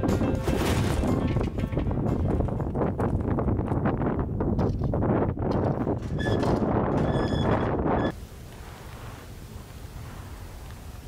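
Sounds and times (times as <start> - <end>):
wheelbarrow rattling over gravel: 0.0 - 2.9
short high squeak: 7.1 - 8.1.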